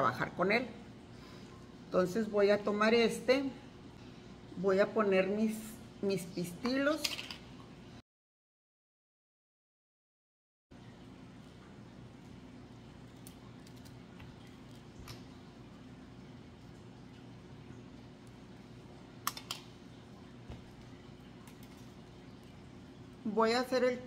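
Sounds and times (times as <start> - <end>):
wire and wire cutters clicking: 19.2 - 19.7.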